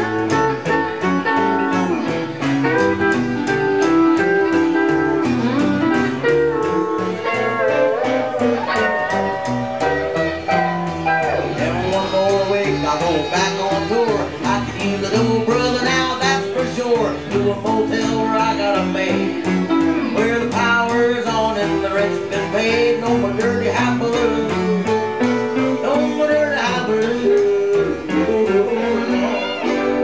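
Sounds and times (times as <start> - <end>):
picked and strummed guitars: 0.0 - 30.0
upright bass plucking: 0.0 - 30.0.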